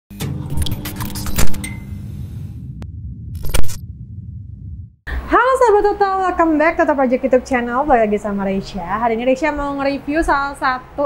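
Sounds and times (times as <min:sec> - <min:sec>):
steady low hum: 0:01.5 - 0:05.7
loud impact: 0:02.4 - 0:05.0.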